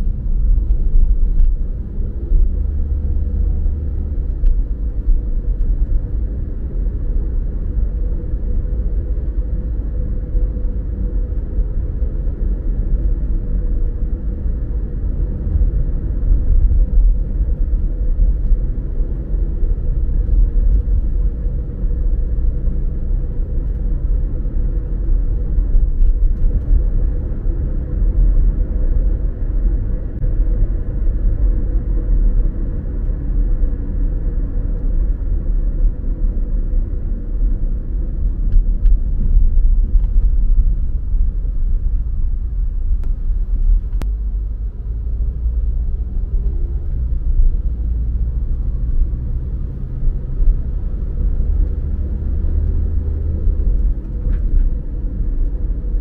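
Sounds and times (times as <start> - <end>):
car interior road rumble: 0.0 - 56.0.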